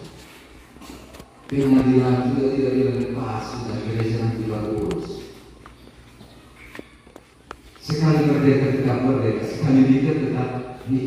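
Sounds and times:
man chanting over loudspeakers: 1.5 - 5.4.

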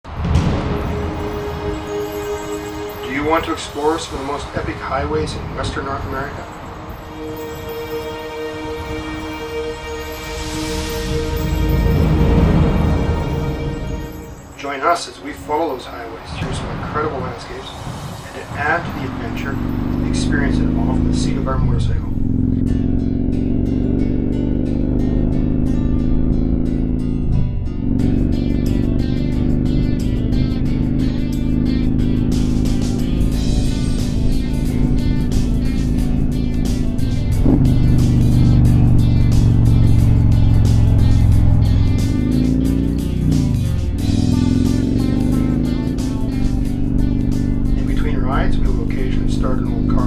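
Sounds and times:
background music with beat: 0.0 - 5.2, 6.3 - 21.2, 28.0 - 50.0
motorcycle engine running: 18.3 - 50.0.

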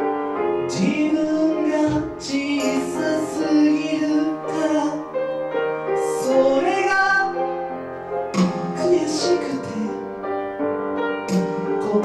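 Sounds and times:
keyboard accompaniment: 0.0 - 12.0
man singing into microphone: 0.7 - 5.2, 6.0 - 7.6, 8.4 - 10.1, 11.3 - 12.0.

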